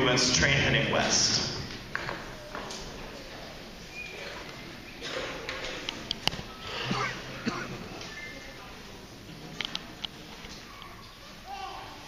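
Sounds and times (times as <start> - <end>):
murmur of voice: 0.0 - 12.0.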